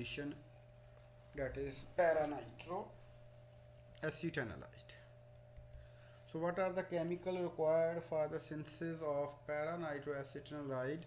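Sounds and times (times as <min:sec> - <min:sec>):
low electrical hum: 0:00.0 - 0:11.0
man speaking softly: 0:01.3 - 0:03.0.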